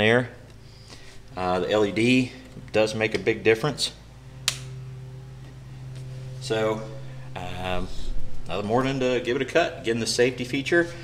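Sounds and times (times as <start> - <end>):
faint electrical hum: 0.0 - 11.0
light switch click: 4.5 - 4.8.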